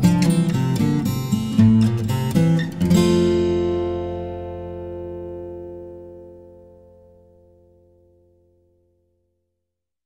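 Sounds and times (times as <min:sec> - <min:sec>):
strummed acoustic guitar: 0:00.0 - 0:08.6.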